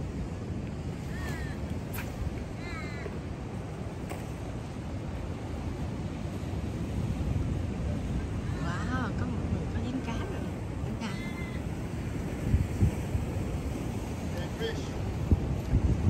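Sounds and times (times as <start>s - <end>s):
ocean surf rumbling: 0.0s - 16.0s
wind on microphone: 0.0s - 16.0s.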